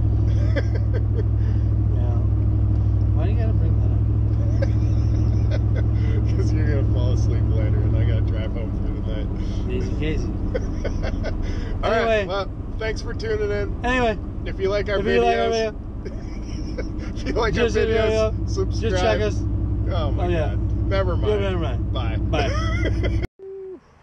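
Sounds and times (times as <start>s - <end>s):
car engine and road rumble: 0.0s - 23.3s.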